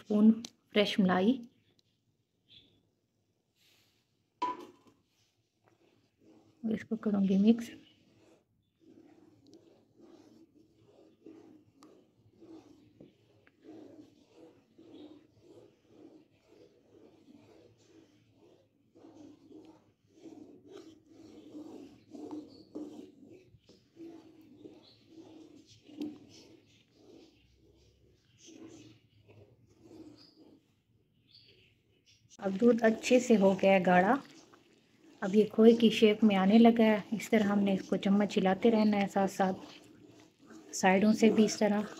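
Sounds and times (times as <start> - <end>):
wooden spatula scraping a pan: 3.5 - 41.9
utensil knocking on cookware: 4.4 - 4.8.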